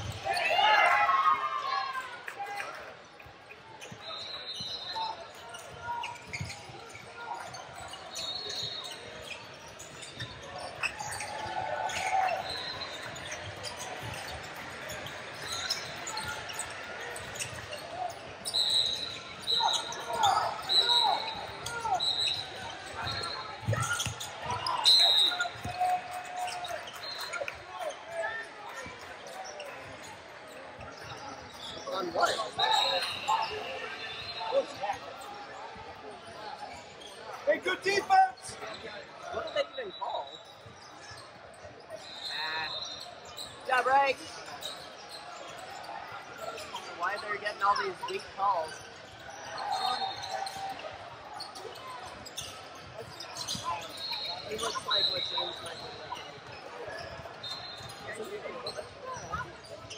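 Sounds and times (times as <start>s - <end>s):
sneaker squeaks: 2.6s - 59.9s.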